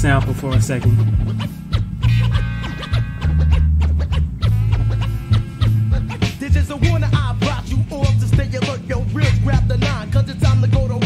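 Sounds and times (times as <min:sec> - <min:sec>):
hip-hop beat with bass: 0:00.0 - 0:11.0
turntable scratching: 0:00.0 - 0:11.0.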